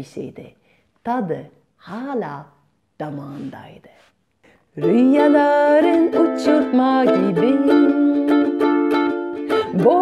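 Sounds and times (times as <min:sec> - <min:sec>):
woman singing: 0:04.7 - 0:10.0
ukulele strumming: 0:04.8 - 0:10.0.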